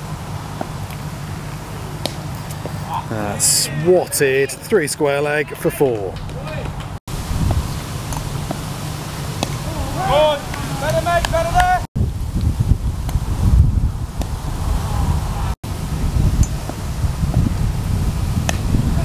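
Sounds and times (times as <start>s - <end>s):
players calling out: 0.0s - 7.0s, 7.8s - 11.9s
wind buffeting microphone: 6.1s - 19.0s.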